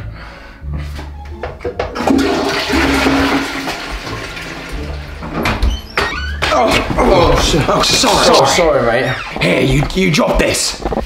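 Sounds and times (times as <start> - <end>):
toilet flushing: 1.8 - 5.8.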